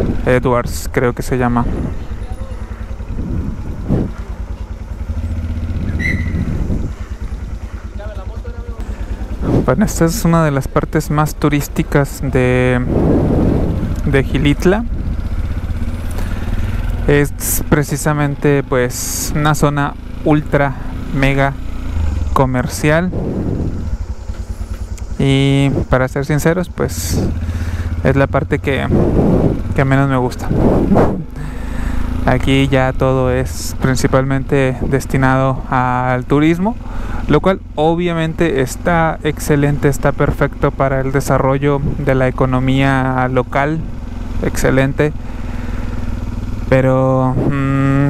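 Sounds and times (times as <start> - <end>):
people's voices: 0.0 - 5.2, 6.4 - 15.0, 24.4 - 43.9
motorcycle engine at low revs: 0.0 - 48.0.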